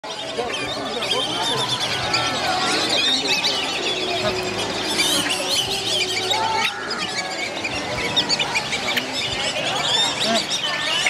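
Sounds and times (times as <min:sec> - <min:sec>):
waterbirds squealing and whistling: 0:00.0 - 0:11.0.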